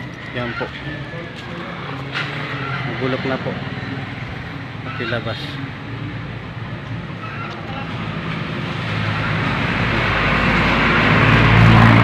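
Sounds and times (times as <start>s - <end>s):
vehicle engine humming: 0.0s - 12.0s.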